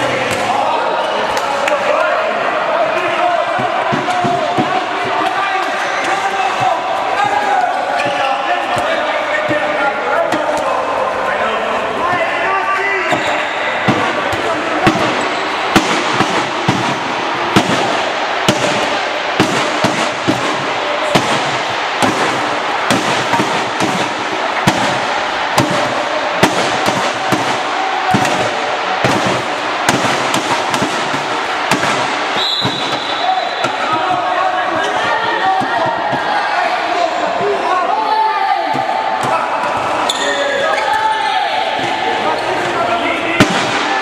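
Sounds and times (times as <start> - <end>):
sharp bangs of ball: 13.1 - 34.3
referee's whistle blast: 32.3 - 33.9.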